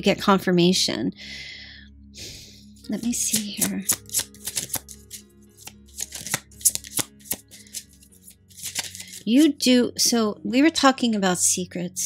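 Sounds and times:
soft background music: 0.0 - 12.0
cards snapping and flicking: 3.0 - 9.6.

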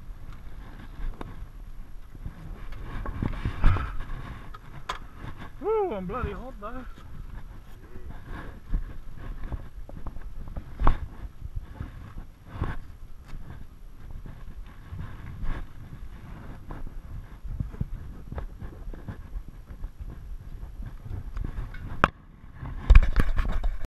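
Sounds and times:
wind rumble on microphone: 0.0 - 23.9.

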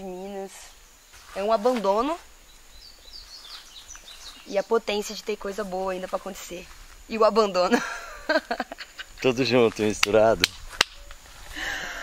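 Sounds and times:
small bird chirping: 0.0 - 6.7.

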